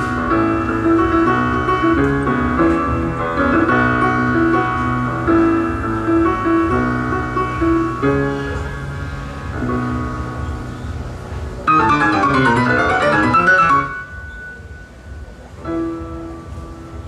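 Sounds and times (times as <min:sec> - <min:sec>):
solo jazz piano: 0:00.0 - 0:17.0.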